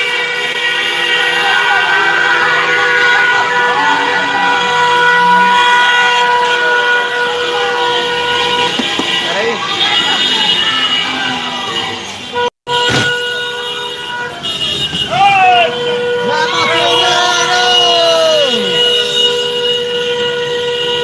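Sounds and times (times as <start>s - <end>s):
car horns honking: 0.0s - 21.0s
long steady horn note: 0.0s - 21.0s
voices: 1.2s - 12.3s, 13.9s - 19.0s.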